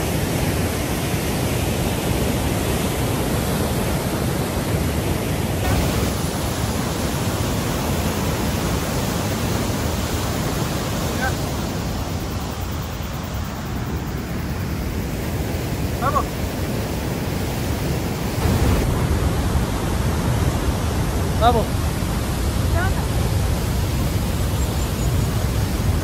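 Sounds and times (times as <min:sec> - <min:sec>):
whitewater rushing: 0:00.0 - 0:26.0.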